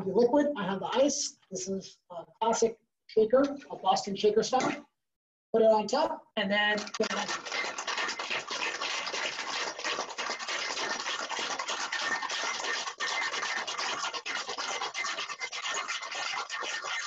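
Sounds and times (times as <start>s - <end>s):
ice cubes rattling in a shaker: 6.8s - 17.0s.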